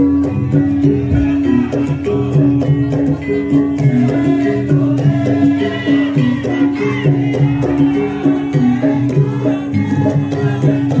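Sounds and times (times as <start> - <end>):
gamelan playing: 0.0 - 11.0.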